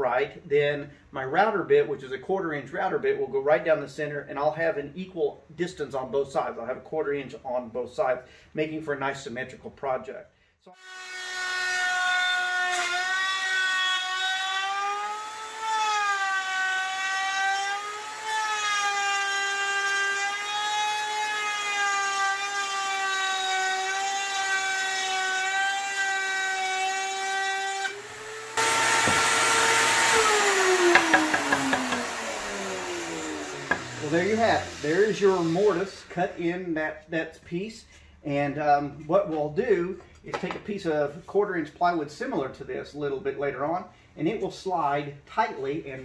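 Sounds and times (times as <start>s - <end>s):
router motor whining: 10.8s - 36.1s.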